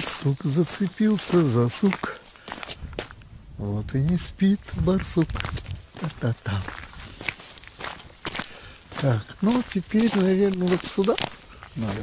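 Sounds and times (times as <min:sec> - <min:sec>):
footsteps on gravel: 0:00.0 - 0:03.3, 0:04.0 - 0:12.0.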